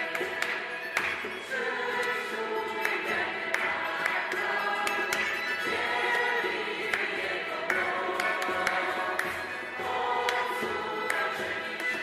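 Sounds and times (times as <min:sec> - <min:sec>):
choir singing worship song: 0:00.0 - 0:12.0.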